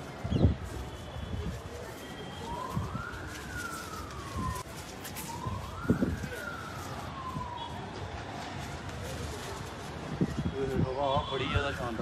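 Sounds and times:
siren wailing: 0:02.3 - 0:08.0.

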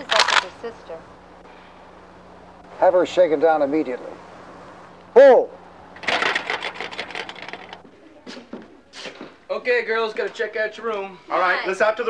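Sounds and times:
fast rattling clatter: 0:06.0 - 0:07.8.

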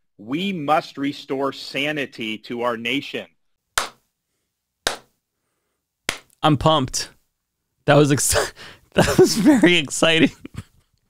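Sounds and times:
hand clap: 0:03.8 - 0:04.1, 0:04.9 - 0:05.2, 0:06.1 - 0:06.4.

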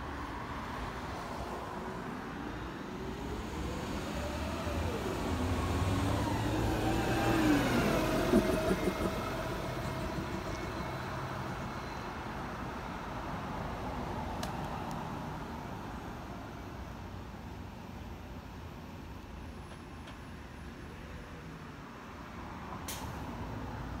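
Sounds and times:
bus engine driving away: 0:00.0 - 0:17.0
road traffic: 0:00.0 - 0:24.0.

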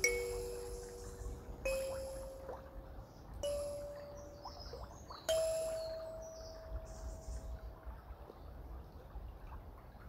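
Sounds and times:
kalimba note ringing: 0:00.0 - 0:02.8, 0:03.4 - 0:04.4, 0:05.3 - 0:06.9
faint high bird chirps: 0:00.0 - 0:07.7.

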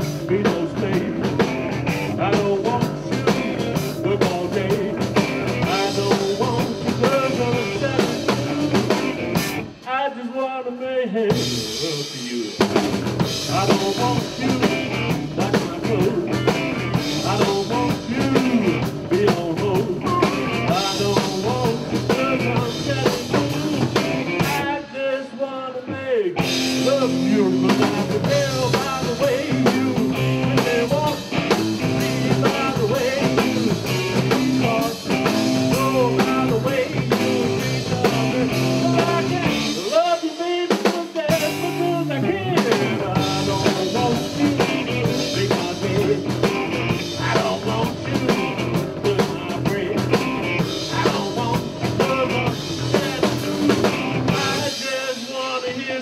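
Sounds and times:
electric bass: 0:00.0 - 0:09.8, 0:12.6 - 0:24.7, 0:26.4 - 0:39.9, 0:41.3 - 0:54.8
drum kit: 0:00.0 - 0:10.4, 0:11.2 - 0:24.9, 0:26.3 - 0:56.0
live rock band: 0:00.0 - 0:56.0.

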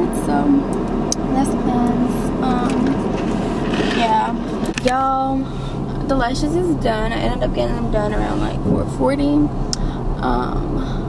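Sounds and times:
woman speaking: 0:00.0 - 0:03.1, 0:03.8 - 0:11.0
steady low hum: 0:00.0 - 0:11.0.

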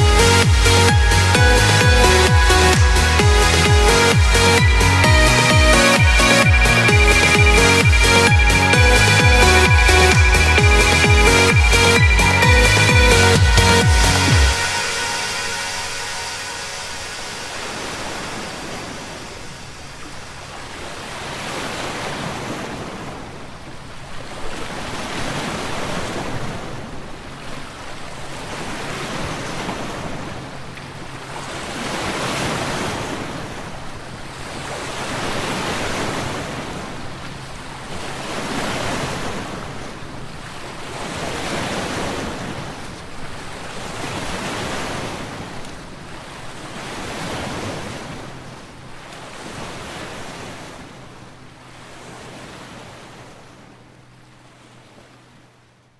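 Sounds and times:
ocean waves washing on beach: 0:13.9 - 0:55.5.

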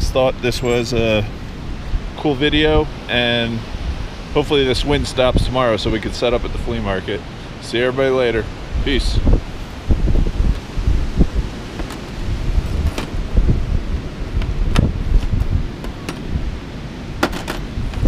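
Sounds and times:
wind buffeting microphone: 0:00.0 - 0:07.0, 0:08.4 - 0:18.0.

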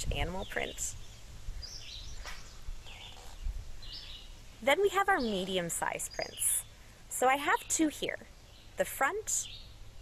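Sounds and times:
small bird chirping: 0:00.2 - 0:10.0.

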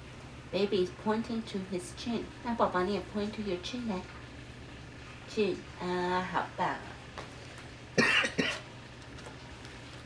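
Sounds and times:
person coughing: 0:08.0 - 0:08.6.

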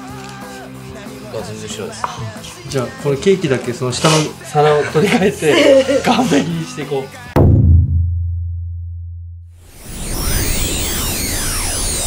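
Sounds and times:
deep electronic hit: 0:07.4 - 0:10.2.

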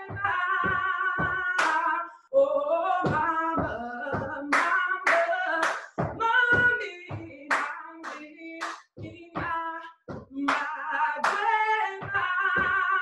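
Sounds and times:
woman singing unaccompanied: 0:00.0 - 0:13.0
hand claps: 0:01.2 - 0:01.9, 0:04.2 - 0:13.0.

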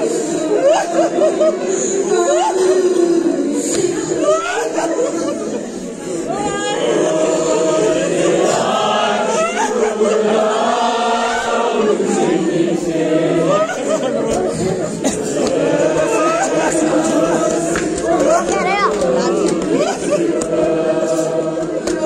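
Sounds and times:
group chanting a lament: 0:00.0 - 0:22.0.

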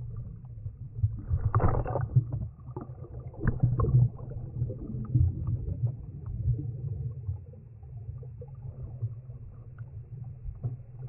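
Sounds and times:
churning water and bubbles: 0:00.0 - 0:11.0
underwater rumble of moving water: 0:00.0 - 0:11.0.

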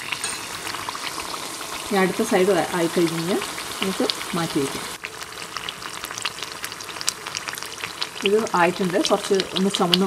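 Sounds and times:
food deep-frying in oil: 0:00.0 - 0:10.0.

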